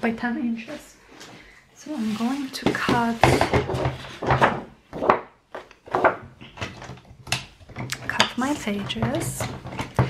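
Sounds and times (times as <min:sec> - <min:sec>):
woman's voice: 0:00.0 - 0:01.0, 0:01.8 - 0:03.6, 0:07.9 - 0:09.6
paper rustling: 0:01.8 - 0:04.4.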